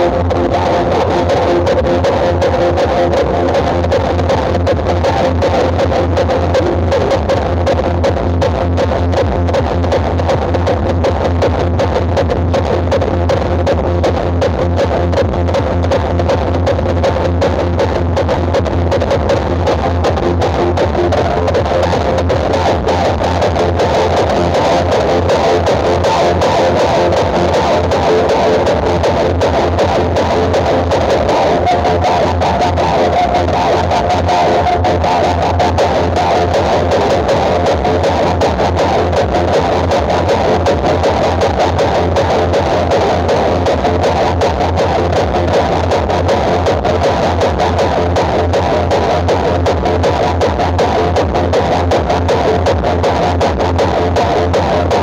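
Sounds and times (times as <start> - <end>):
loud music with heavy bass: 0.0 - 55.0.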